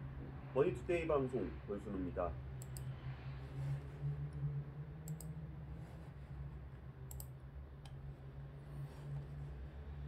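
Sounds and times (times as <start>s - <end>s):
computer mouse clicks: 2.6s - 2.9s, 5.0s - 5.4s, 7.1s - 8.0s.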